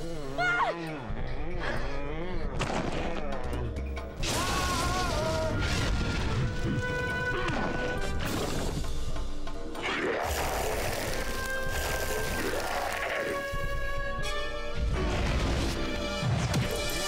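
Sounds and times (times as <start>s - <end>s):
dramatic background music: 0.0s - 17.0s.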